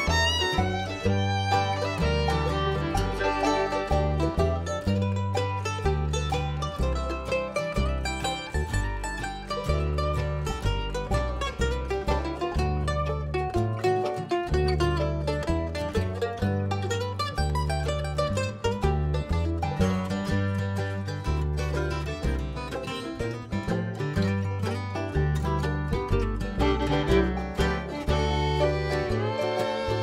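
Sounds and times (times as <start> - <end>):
bluegrass band playing: 0.0 - 30.0
upright bass plucking: 0.0 - 30.0.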